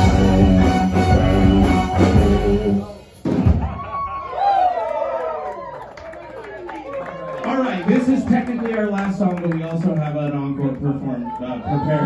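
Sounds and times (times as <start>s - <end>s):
band music: 0.0s - 4.0s.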